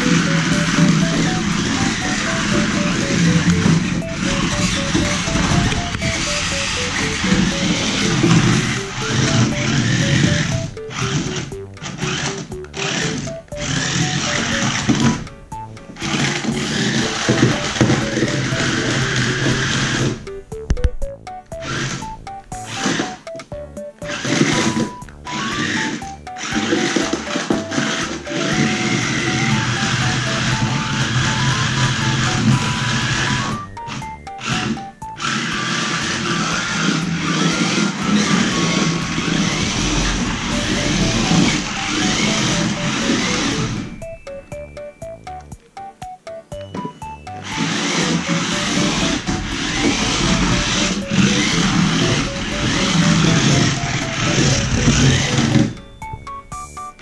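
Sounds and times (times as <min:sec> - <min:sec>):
toy car electric motors whirring: 0:00.0 - 0:45.4, 0:46.7 - 0:57.0
background music melody: 0:00.0 - 0:57.0.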